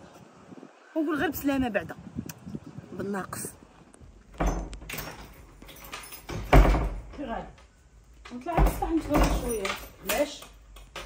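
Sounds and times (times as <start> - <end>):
wooden door slamming shut: 4.3 - 7.4, 8.4 - 10.3.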